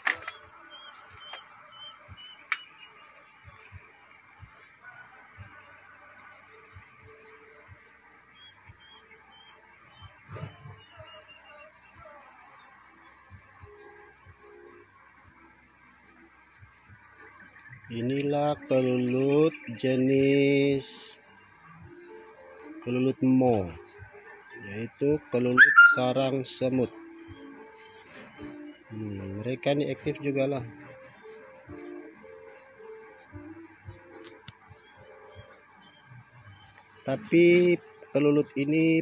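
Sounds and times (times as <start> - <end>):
steady high-pitched whine: 0.0 - 39.0
small bird chirping: 25.5 - 26.1.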